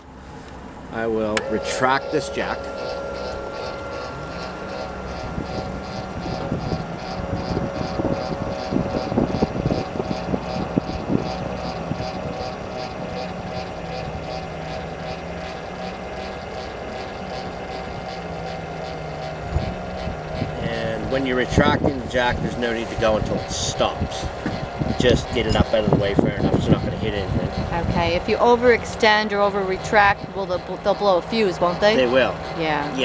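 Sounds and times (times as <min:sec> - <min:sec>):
electric jack motor whine: 0:00.0 - 0:33.0
even mechanical ticking: 0:01.3 - 0:33.0.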